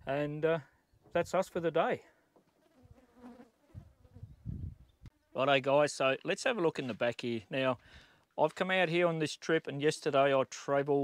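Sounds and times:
fly buzzing: 2.5s - 5.4s.

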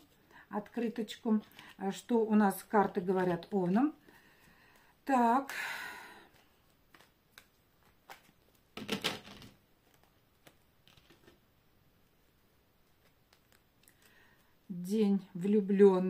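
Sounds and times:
cards clicking and rustling: 6.3s - 11.4s.

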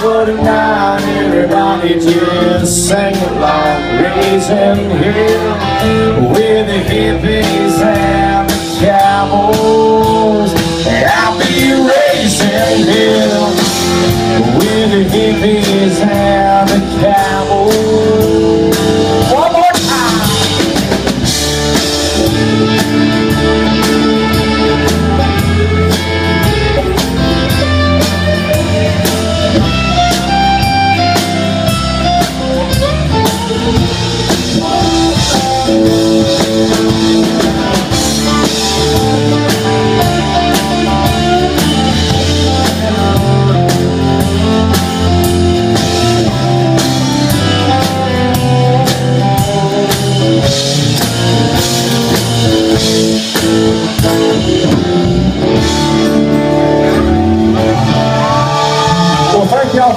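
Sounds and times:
country-rock band instrumental: 0.0s - 59.9s
melodic guitar line: 0.0s - 59.9s.

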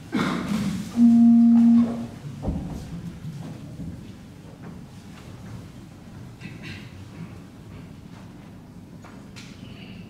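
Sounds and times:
low organ note: 1.0s - 2.2s.

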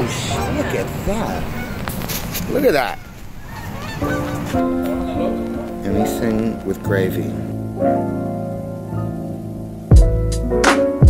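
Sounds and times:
geese honking: 0.0s - 8.1s
background music with held notes: 3.9s - 11.0s.

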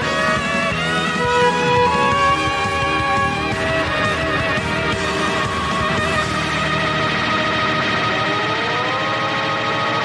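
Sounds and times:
held backing chord: 0.0s - 10.0s
violin sliding up in pitch: 0.0s - 10.0s.

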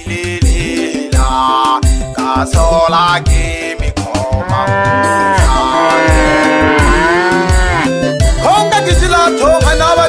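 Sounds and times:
steady bass-drum beat: 0.0s - 10.0s
moo-like lowing call: 4.0s - 8.0s.

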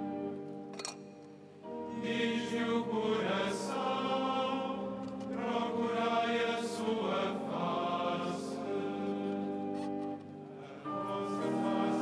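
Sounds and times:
choir chanting plainsong: 1.6s - 12.0s.

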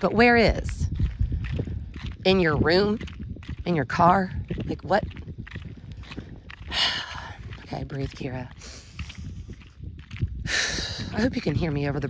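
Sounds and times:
soft footsteps: 0.0s - 12.0s
wind rumbling on microphone: 0.0s - 12.0s.

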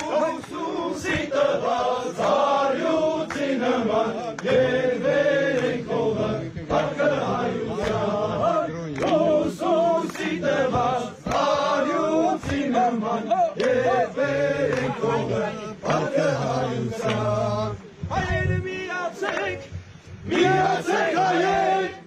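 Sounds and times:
men singing in unison: 0.0s - 22.0s.

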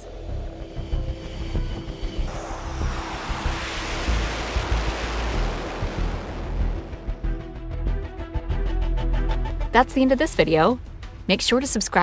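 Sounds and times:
fighter jet engine rushing: 0.0s - 7.9s.

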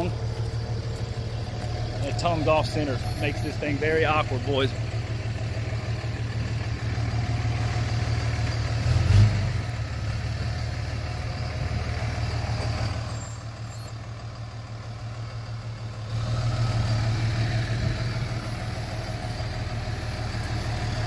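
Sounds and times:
truck engine idling: 0.0s - 21.0s.

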